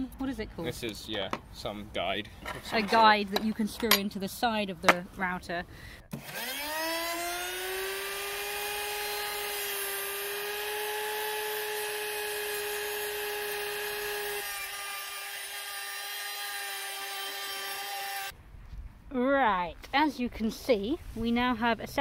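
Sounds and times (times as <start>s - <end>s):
electric router whining: 6.1s - 18.3s.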